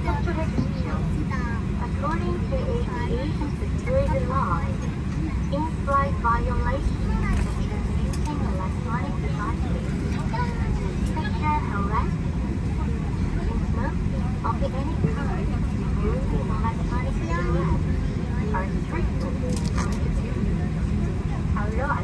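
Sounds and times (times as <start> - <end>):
indistinct voices talking: 0.0 - 22.0
low rumble inside aircraft cabin: 0.0 - 22.0.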